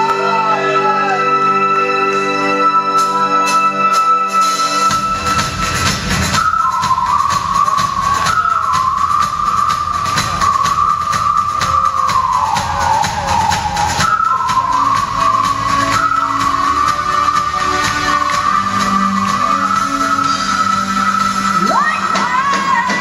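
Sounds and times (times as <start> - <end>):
steady drum beat: 4.9 - 23.0.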